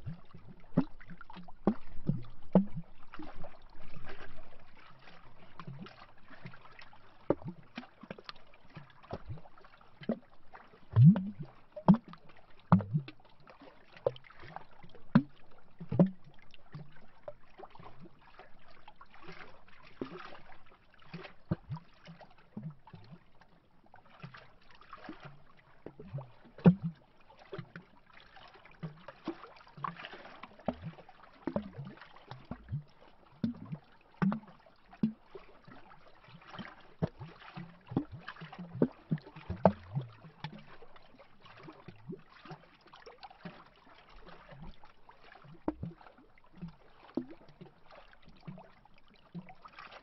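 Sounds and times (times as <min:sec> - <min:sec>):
waves lapping against tree trunk: 0:00.0 - 0:10.7, 0:16.3 - 0:32.6, 0:33.2 - 0:50.0.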